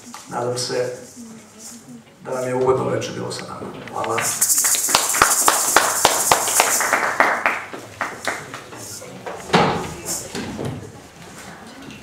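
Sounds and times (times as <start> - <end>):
audience applauding: 4.1 - 8.8.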